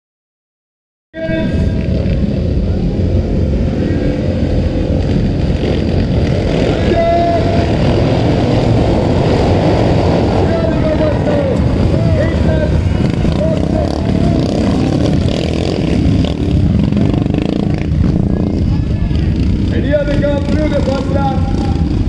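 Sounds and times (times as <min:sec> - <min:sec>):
motorcycle engines revving: 0:01.2 - 0:22.0
voices: 0:01.2 - 0:22.0.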